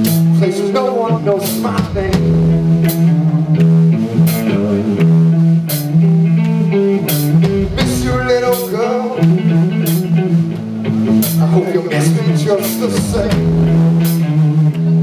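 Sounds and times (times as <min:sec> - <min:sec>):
bass guitar notes: 0:00.0 - 0:15.0
drum kit: 0:00.0 - 0:15.0
electric guitar lines: 0:00.0 - 0:15.0.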